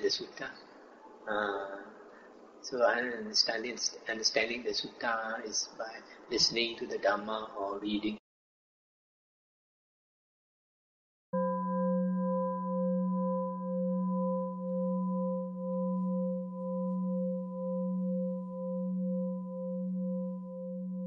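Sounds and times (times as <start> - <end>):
singing bowl ringing: 11.4 - 21.0.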